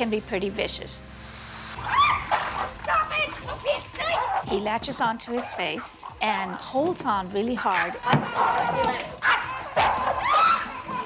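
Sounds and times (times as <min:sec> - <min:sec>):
dogs barking and yelping: 0:01.8 - 0:11.0
dog bending cries: 0:07.6 - 0:11.0.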